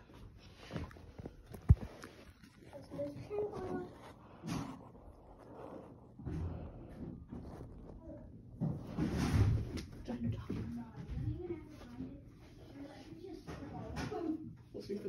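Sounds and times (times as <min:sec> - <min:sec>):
rustling: 0:00.1 - 0:15.0.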